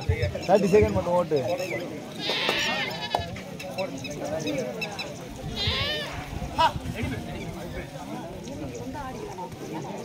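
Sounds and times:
shrill warbling cry: 5.6 - 6.3.

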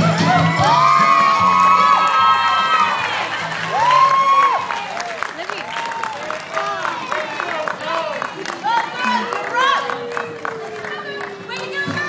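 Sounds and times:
music: 0.0 - 4.8
audience cheering and whooping: 0.0 - 12.0.

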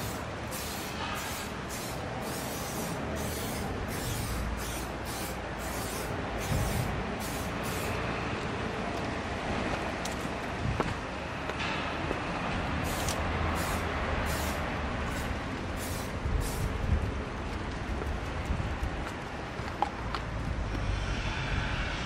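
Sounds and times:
aerosol spray hissing: 0.0 - 8.0, 12.8 - 16.7
steady low rumble: 5.5 - 22.0.

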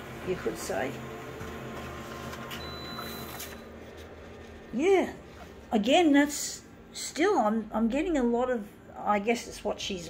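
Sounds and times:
copier humming: 0.0 - 6.9.

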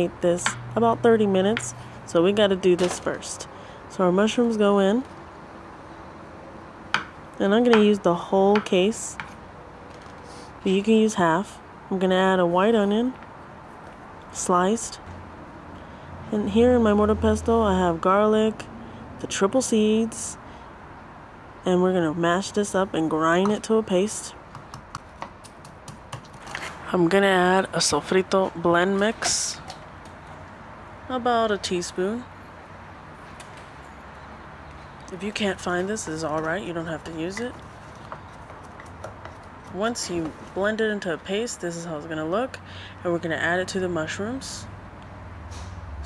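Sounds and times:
pestle pounding in wooden mortar: 24.5 - 26.4, 37.4 - 40.4.

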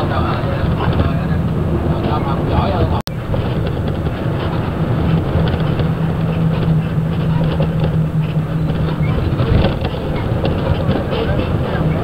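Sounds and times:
bus engine drone: 0.0 - 12.0
low hum: 0.0 - 12.0
road noise: 0.0 - 12.0.

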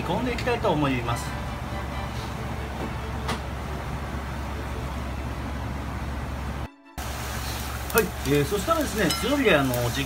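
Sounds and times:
gas burner rumbling: 0.0 - 10.0.

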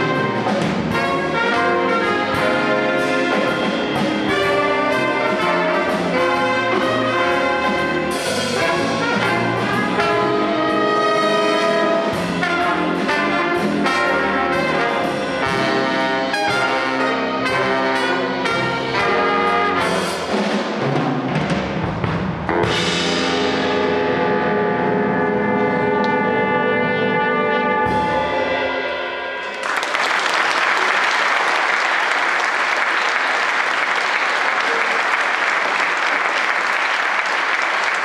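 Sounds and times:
jazz big band playing: 0.0 - 38.0.

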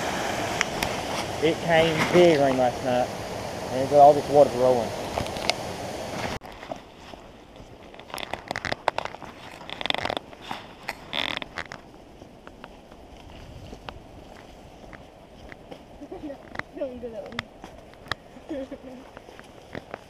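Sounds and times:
rushing creek water: 0.0 - 7.9
leaves and twigs crackling: 4.1 - 20.0
footsteps crunching on dirt trail: 6.2 - 20.0.

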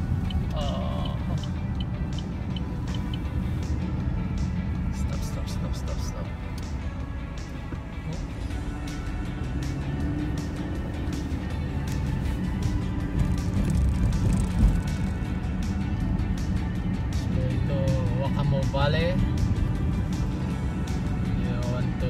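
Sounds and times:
music with beat: 0.0 - 18.5
car road rumble: 0.0 - 22.0.

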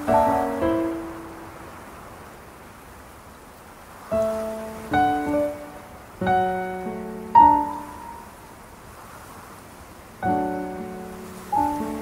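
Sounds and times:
slow piano music: 0.0 - 2.2, 4.1 - 8.6, 10.2 - 12.0
steady hiss: 0.0 - 12.0.

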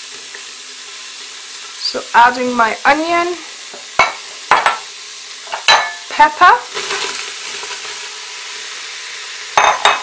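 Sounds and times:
onion and peppers sizzling: 0.0 - 10.0.

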